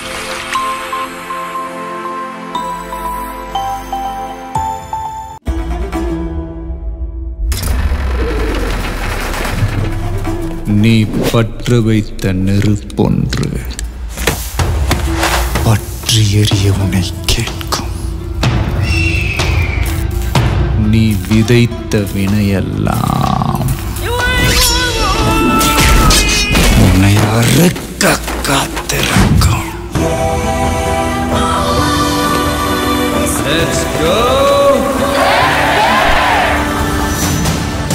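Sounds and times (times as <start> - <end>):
soundtrack music: 0.0 - 37.9
sudden rush of noise: 7.5 - 10.6.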